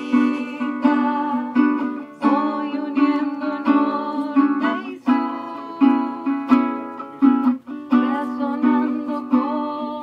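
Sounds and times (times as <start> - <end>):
small guitar strumming: 0.0 - 10.0.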